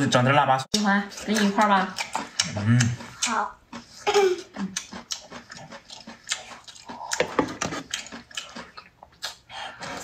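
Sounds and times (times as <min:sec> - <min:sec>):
chewing and lip-smacking: 0:00.7 - 0:10.0.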